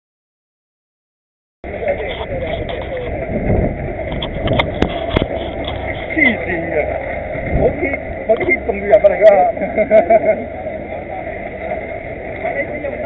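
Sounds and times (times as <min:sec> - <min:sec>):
low microphone rumble: 0:01.6 - 0:13.0
people chattering: 0:01.6 - 0:13.0.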